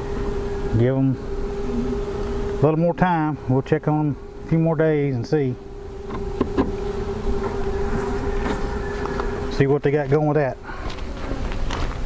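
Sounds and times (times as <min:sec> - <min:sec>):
bees humming: 0:00.0 - 0:12.0
wooden beehive frames knocking: 0:05.8 - 0:10.2.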